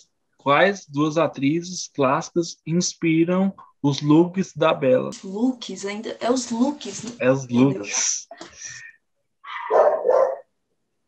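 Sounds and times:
dog barking: 0:09.5 - 0:10.5.

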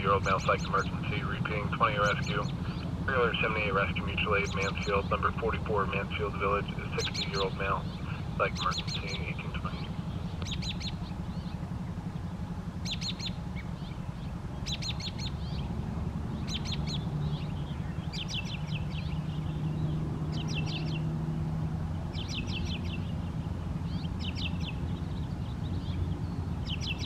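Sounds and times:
faint hum: 0:00.0 - 0:27.0
low outdoor rumble: 0:00.0 - 0:27.0
songbird chirping: 0:00.0 - 0:27.0.

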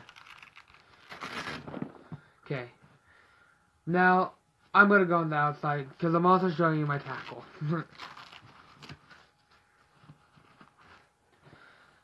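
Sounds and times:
fabric bag strap rustling: 0:07.1 - 0:09.3.

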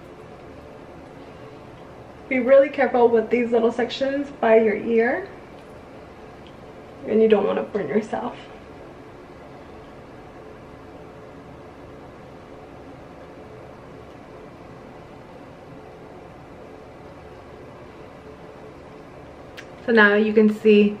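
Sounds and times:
faint hum: 0:00.0 - 0:21.0.

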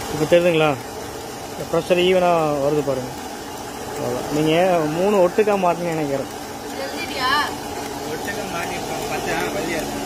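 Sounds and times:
vacuum pump humming: 0:00.0 - 0:10.0.

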